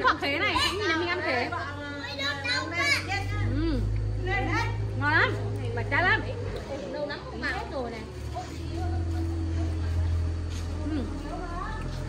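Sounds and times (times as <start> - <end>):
children talking and calling out: 0.2 - 5.7.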